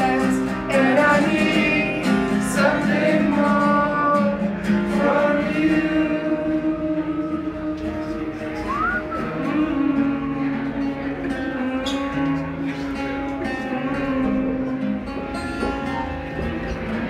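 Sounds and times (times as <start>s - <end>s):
man singing: 0.0s - 15.0s
strummed acoustic guitar: 0.0s - 17.0s.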